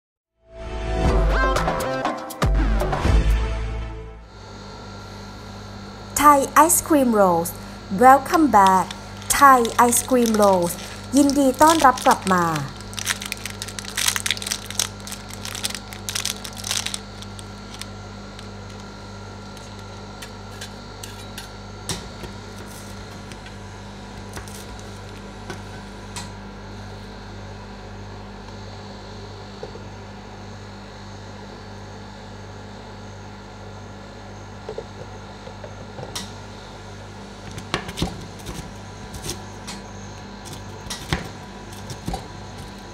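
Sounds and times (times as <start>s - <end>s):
low machine hum: 4.0s - 42.9s
foil wrapper crinkling: 8.2s - 20.0s.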